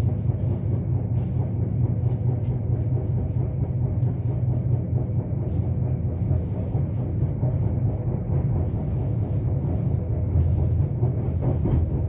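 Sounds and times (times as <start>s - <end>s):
train rumbling inside carriage: 0.0s - 12.0s.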